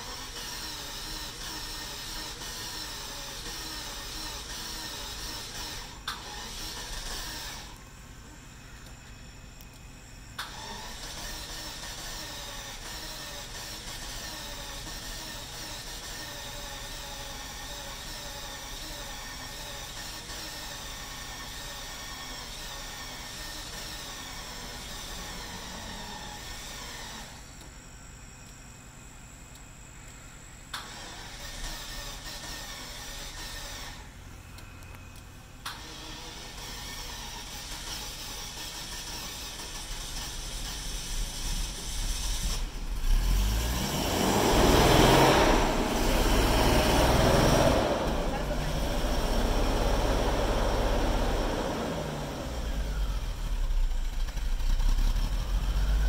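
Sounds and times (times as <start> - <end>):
car engine running and stalling: 0.0 - 56.0.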